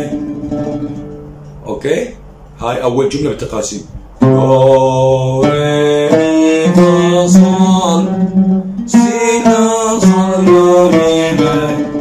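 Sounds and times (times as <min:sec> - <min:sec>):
man singing long held notes: 0:04.2 - 0:12.0.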